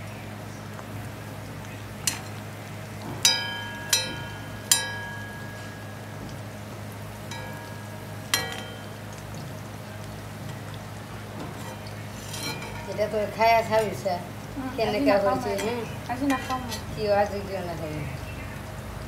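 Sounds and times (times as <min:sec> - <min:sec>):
oil sizzling: 0:00.0 - 0:19.0
steady low hum: 0:00.0 - 0:19.0
metal skimmer clinking against wok: 0:02.0 - 0:02.4, 0:03.2 - 0:09.7, 0:11.4 - 0:14.1, 0:15.1 - 0:17.4.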